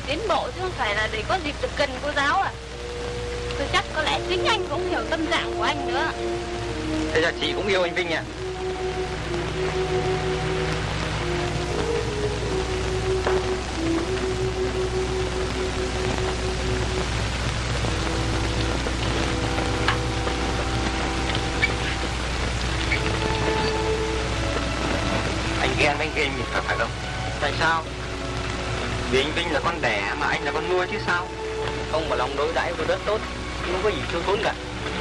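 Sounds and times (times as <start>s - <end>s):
slow film music melody: 0.0s - 35.0s
soundtrack hiss and hum: 0.0s - 35.0s.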